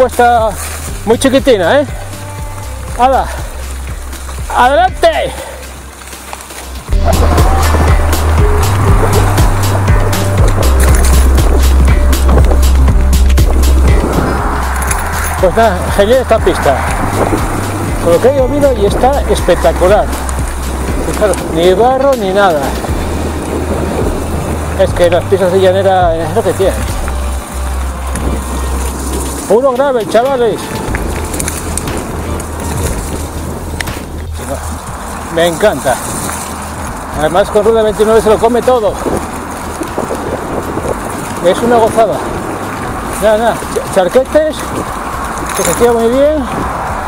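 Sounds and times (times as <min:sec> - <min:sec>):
bike rattling and knocking: 0:00.0 - 0:47.0
tyres crunching on gravel: 0:00.0 - 0:47.0
wind rumble on microphone: 0:00.0 - 0:47.0.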